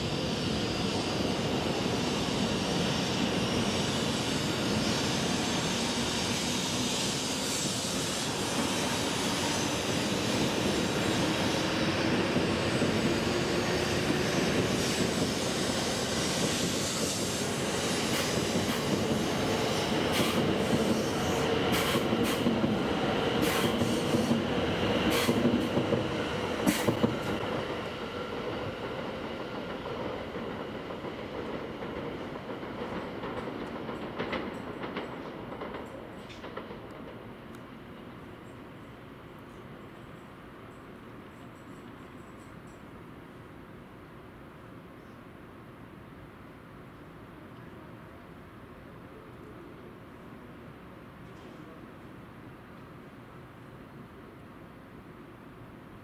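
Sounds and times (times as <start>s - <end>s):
train wheels clicking on track: 0.0s - 38.7s
train accelerating with whine: 0.0s - 56.0s.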